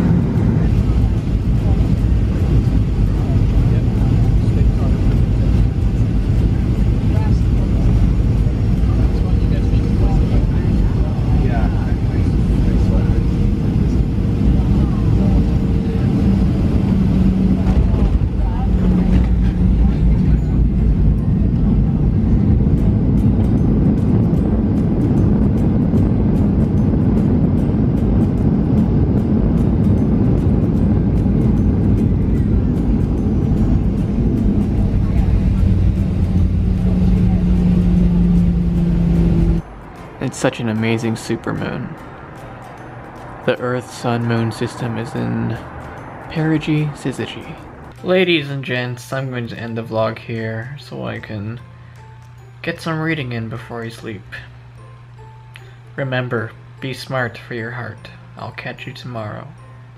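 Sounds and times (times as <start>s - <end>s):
jet engines rumbling: 0.0s - 48.6s.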